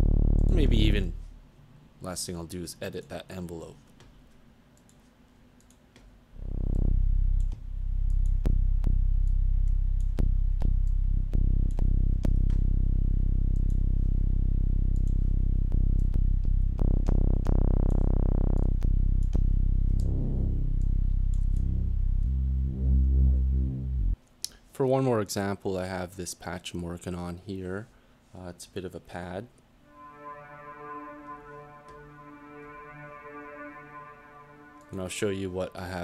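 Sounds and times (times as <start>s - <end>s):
deep synth bass notes: 0.0s - 1.4s, 6.4s - 24.2s, 29.9s - 36.0s.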